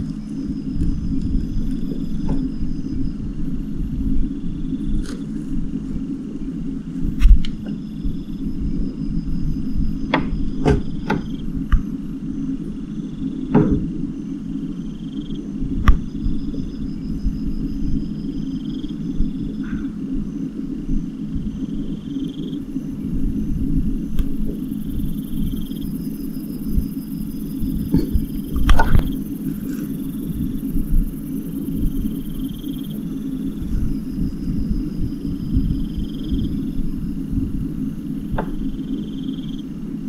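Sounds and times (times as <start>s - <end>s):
high insect-like chirping: 0.0s - 40.0s
steady low hum: 0.0s - 40.0s.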